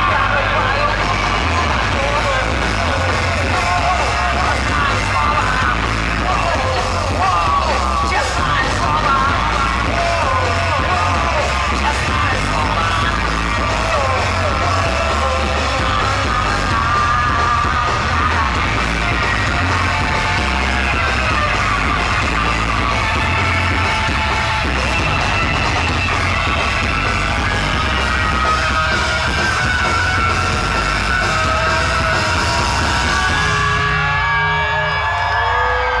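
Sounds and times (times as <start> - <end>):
steady bass beat: 0.0 - 35.1
live rock music: 0.0 - 36.0
person singing and yelling: 0.0 - 36.0.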